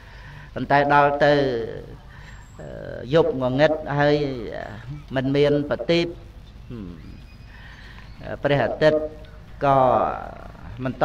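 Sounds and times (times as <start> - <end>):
low steady microphone hum: 0.0 - 11.0.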